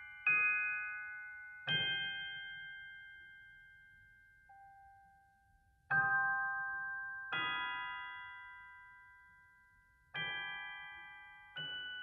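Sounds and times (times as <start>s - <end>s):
bell-like music-box chord: 0.0s - 12.0s.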